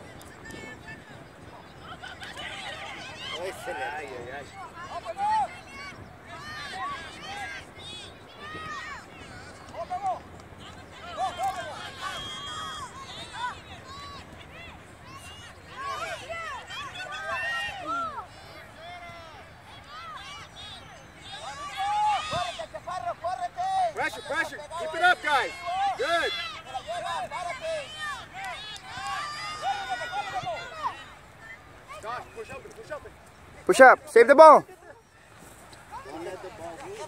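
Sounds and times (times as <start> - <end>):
people shouting and calling: 0.4 - 37.0.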